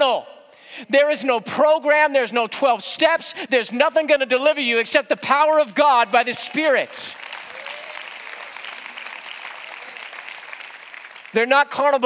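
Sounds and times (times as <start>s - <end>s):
crowd applauding: 6.5s - 11.5s.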